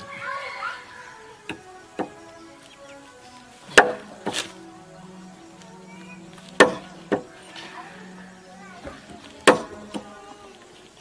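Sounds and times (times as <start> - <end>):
axe chopping wood: 3.7 - 4.5, 9.5 - 10.1.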